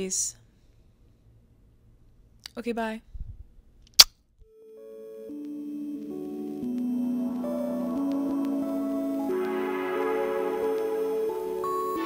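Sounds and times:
soft music: 4.4 - 12.0.

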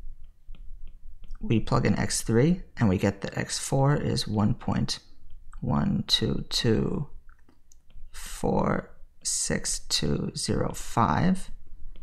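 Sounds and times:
man speaking: 1.4 - 7.2, 8.1 - 11.6.

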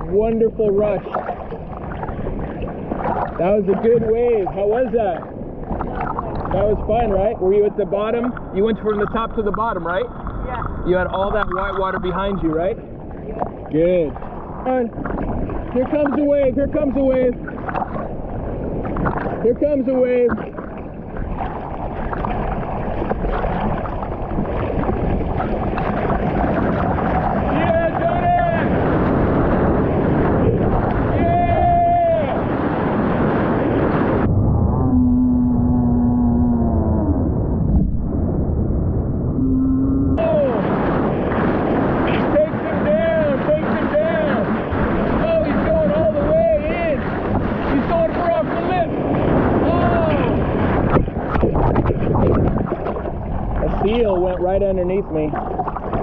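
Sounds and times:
surf and whitewater rushing: 0.0 - 34.3, 40.2 - 56.0.

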